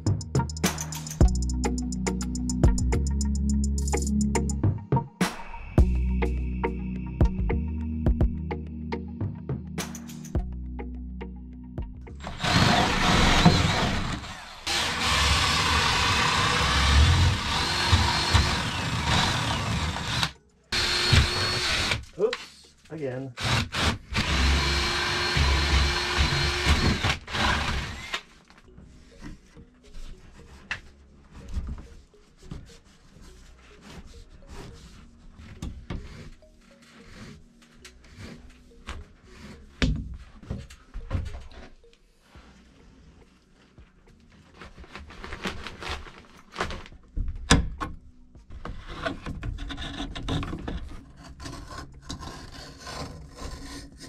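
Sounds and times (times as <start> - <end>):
cordless drill boring through wood: 12.2 - 22.1, 23.4 - 28.3.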